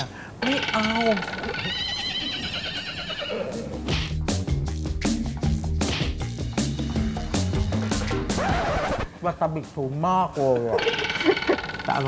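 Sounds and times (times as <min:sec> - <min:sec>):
comic horse whinny: 0:01.5 - 0:03.8
music with drum beat: 0:03.6 - 0:09.1.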